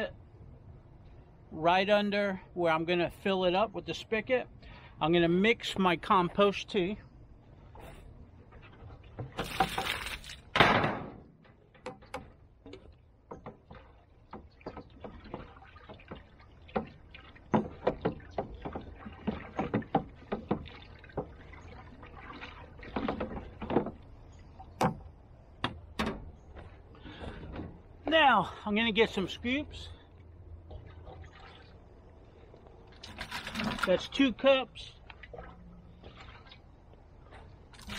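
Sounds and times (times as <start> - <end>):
stick stirring water in barrel: 7.6 - 10.5, 11.7 - 25.8, 32.6 - 37.9
water poured into plastic barrel: 9.3 - 10.5, 33.0 - 34.2.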